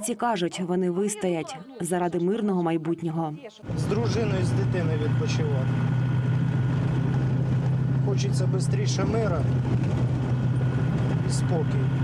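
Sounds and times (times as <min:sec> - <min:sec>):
vehicle engine droning: 0:03.6 - 0:12.0.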